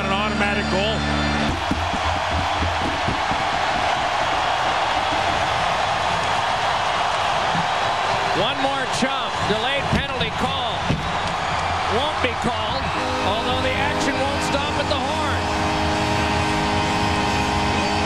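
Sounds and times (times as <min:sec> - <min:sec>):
arena crowd cheering: 0:00.0 - 0:18.0.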